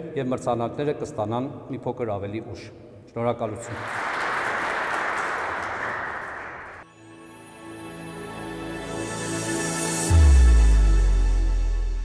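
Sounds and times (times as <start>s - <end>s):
audience applauding: 3.6s - 6.8s
soft music with held notes: 6.8s - 12.0s.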